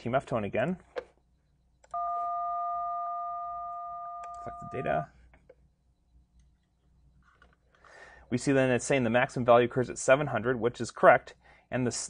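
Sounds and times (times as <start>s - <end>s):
touch-tone dial tone: 1.9s - 5.0s.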